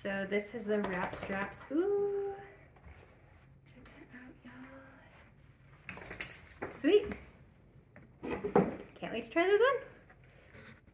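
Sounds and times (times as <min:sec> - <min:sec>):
soft hum: 0:00.0 - 0:06.2.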